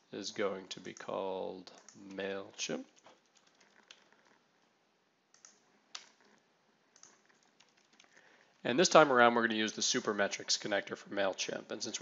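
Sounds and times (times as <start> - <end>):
computer keyboard keystrokes: 3.2 - 4.3, 5.3 - 6.2, 7.0 - 8.2.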